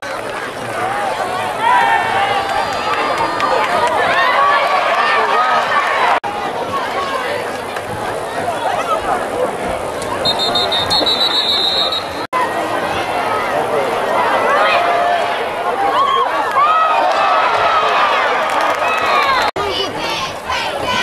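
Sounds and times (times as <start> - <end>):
crowd cheering and shouting: 0.0 - 21.0
referee's whistle blowing: 10.2 - 12.3.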